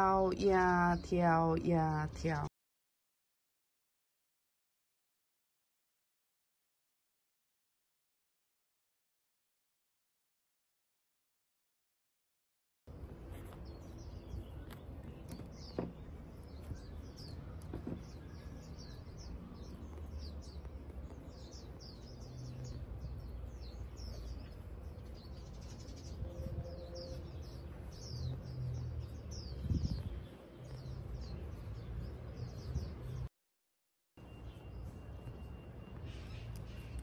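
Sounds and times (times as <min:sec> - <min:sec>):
small birds chirping: 0:00.0 - 0:02.5, 0:12.9 - 0:33.3, 0:34.2 - 0:37.0.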